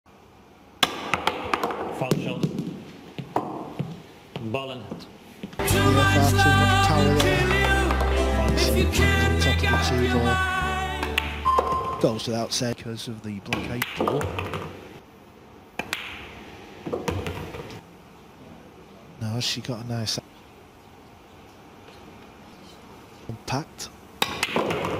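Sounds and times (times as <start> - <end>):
pool balls clacking together: 0.9 - 2.7, 13.5 - 14.8, 24.2 - 24.9
pool cue and balls clicking: 11.1 - 12.0, 13.5 - 14.8, 24.2 - 24.9.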